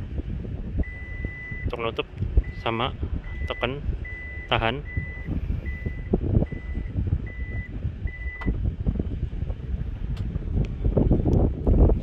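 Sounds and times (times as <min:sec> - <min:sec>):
low handling rumble: 0:00.0 - 0:12.0.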